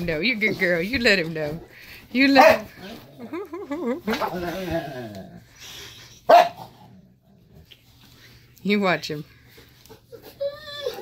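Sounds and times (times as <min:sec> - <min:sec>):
dog barking: 0:02.4 - 0:02.7, 0:06.3 - 0:06.8.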